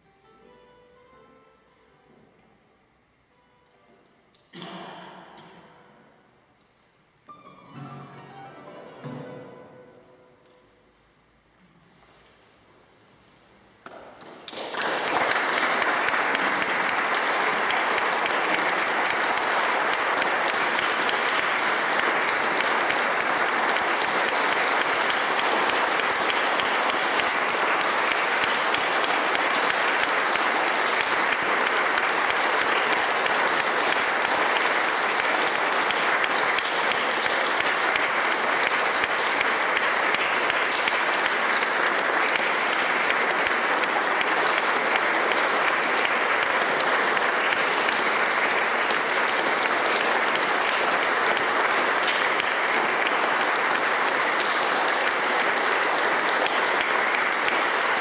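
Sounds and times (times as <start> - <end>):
audience applauding: 13.9 - 58.0.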